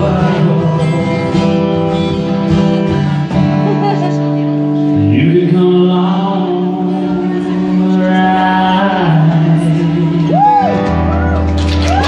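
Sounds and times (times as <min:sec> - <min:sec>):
acoustic guitar: 0:00.0 - 0:12.0.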